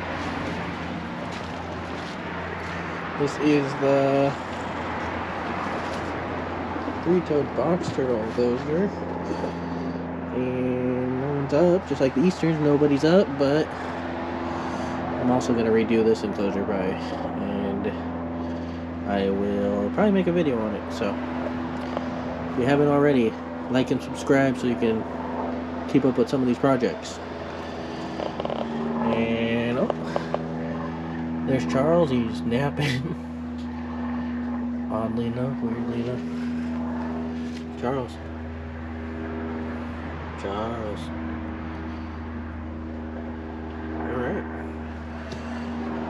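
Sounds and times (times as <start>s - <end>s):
low hum: 0.0s - 46.0s.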